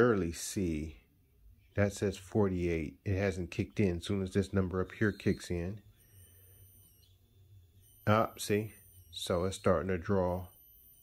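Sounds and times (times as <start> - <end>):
faint low electrical hum: 0.0 - 11.0
high-pitched inverter whine: 0.0 - 11.0.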